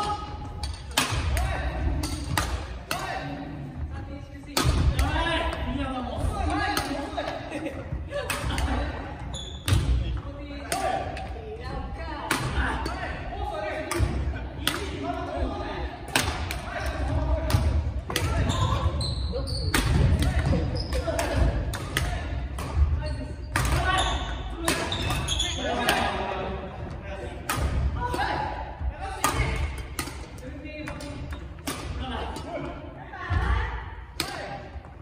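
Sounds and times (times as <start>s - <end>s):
rackets striking shuttlecocks: 0.5s - 3.3s, 13.7s - 15.1s, 16.0s - 18.9s, 29.1s - 32.5s.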